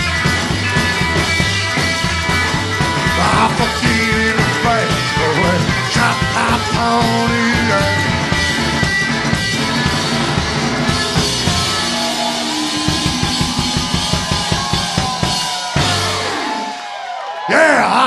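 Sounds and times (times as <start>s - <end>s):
fast drum strokes: 0.0s - 16.6s
live rock band playing: 0.0s - 16.9s.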